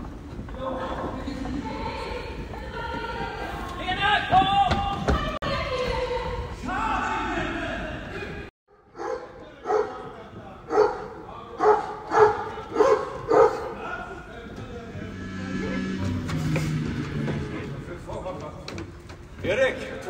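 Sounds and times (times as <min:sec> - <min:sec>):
dog barking: 0:08.7 - 0:10.0, 0:10.7 - 0:13.7
low held music notes: 0:13.1 - 0:19.4.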